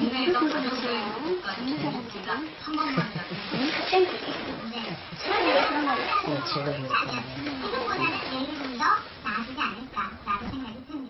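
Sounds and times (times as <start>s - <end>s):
women talking: 0.0s - 11.0s.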